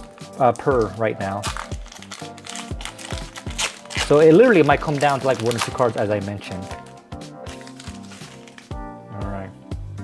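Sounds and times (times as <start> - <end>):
background music with steady beat: 0.0 - 10.0
foil wrapper crinkling: 0.5 - 8.8.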